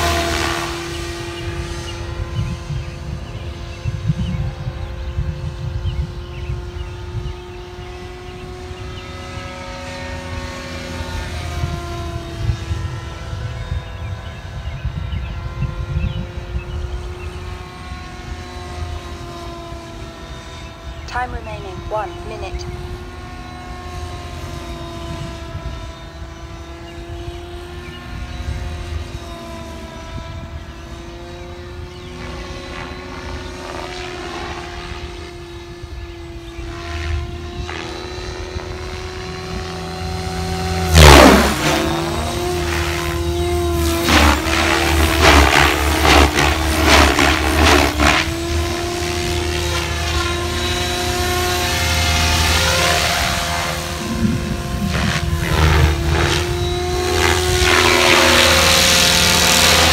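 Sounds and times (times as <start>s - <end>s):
choppy rotor blade noise: 0.0s - 59.9s
rc helicopter whine: 0.0s - 59.9s.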